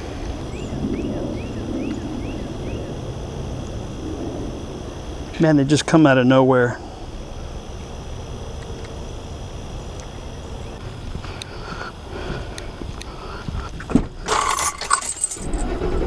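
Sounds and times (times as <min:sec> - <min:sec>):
steady background hiss: 0:00.0 - 0:16.0
thump: 0:13.9 - 0:14.1
car keys jangling: 0:14.3 - 0:15.6.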